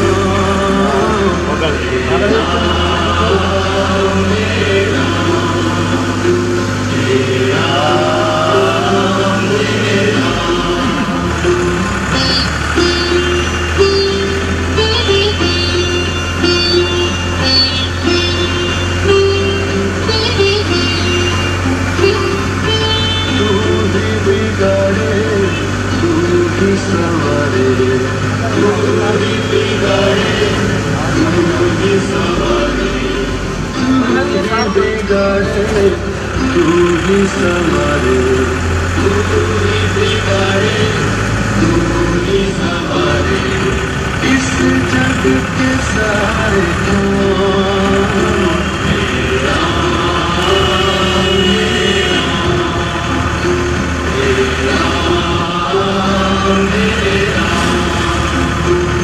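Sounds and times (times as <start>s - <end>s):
devotional singing with music: 0.0s - 59.0s
vehicle engine hum: 0.0s - 59.0s.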